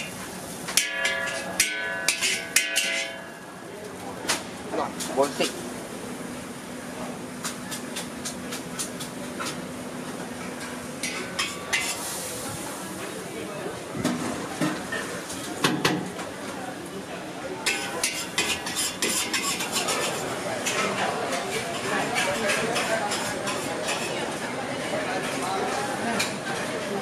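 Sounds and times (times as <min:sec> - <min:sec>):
metal utensils clinking on pots: 0:00.7 - 0:03.4, 0:10.4 - 0:12.1, 0:17.6 - 0:24.2.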